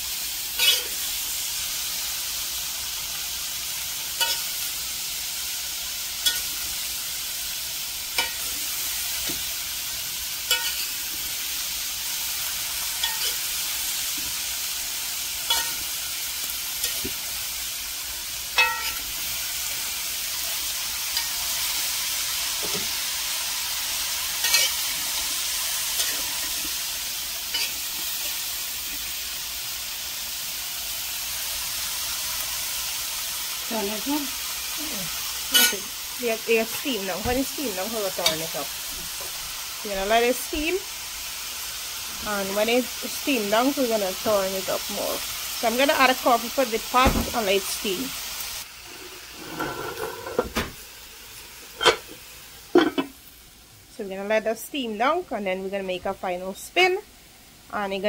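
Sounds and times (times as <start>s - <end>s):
cabbage sizzling in a pan: 0.0s - 58.0s
metal spoon scraping a pan: 0.5s - 1.2s, 4.1s - 5.2s, 6.1s - 6.9s, 8.1s - 9.5s, 10.4s - 11.7s, 12.8s - 14.6s, 15.2s - 17.2s, 18.5s - 19.3s, 21.1s - 23.1s, 23.7s - 29.2s, 35.5s - 36.0s, 38.1s - 38.6s, 48.8s - 50.5s, 51.7s - 52.2s.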